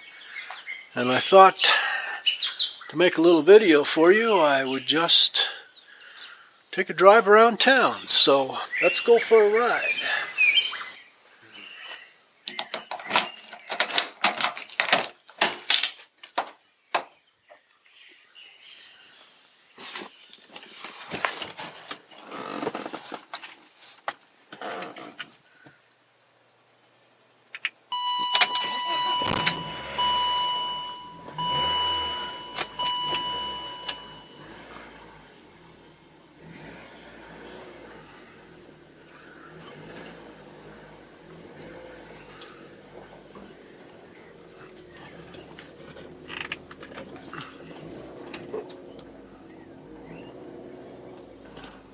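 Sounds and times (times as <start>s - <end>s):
two-tone warning chime: 27.9s - 35.0s
car engine starting and idling: 27.9s - 51.9s.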